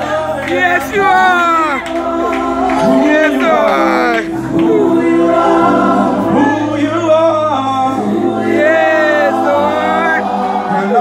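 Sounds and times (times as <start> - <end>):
gospel group singing: 0.0 - 11.0.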